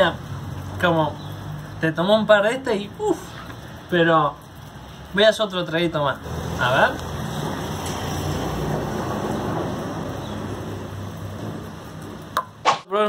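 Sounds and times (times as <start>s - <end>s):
steady rain falling: 0.0s - 13.0s.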